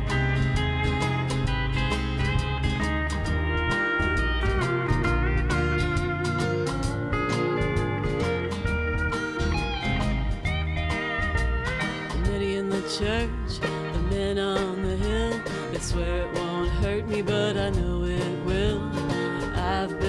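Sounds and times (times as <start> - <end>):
drums: 0.0 - 20.0
electric bass: 0.0 - 20.0
steel guitar sliding: 0.0 - 20.0
strummed acoustic guitar: 0.0 - 20.0.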